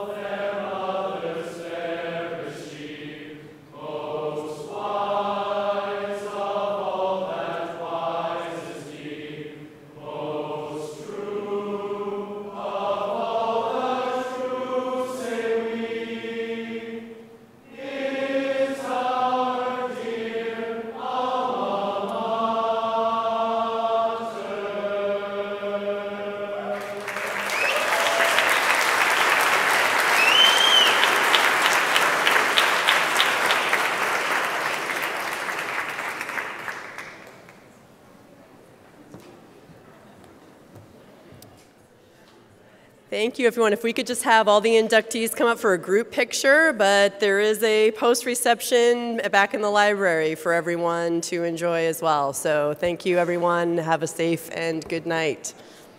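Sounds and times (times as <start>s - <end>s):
group of voices singing: 0.0s - 33.8s
crowd applauding: 26.7s - 37.7s
whistle: 27.4s - 28.3s, 30.0s - 31.4s.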